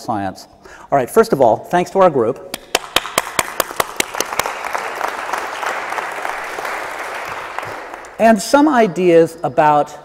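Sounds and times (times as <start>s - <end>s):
audience applauding: 2.7s - 8.2s.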